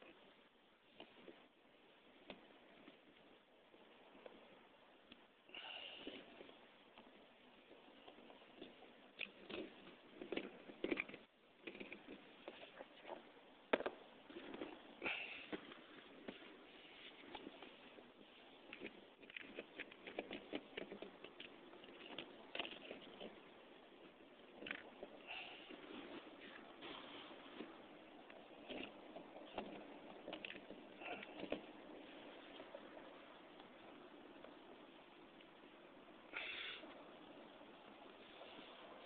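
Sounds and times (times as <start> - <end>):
small clicks and knocks: 8.0 - 14.8, 18.7 - 23.4.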